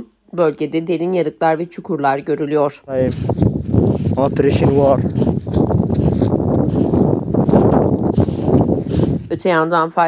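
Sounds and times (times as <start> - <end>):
wind buffeting microphone: 2.9 - 9.7.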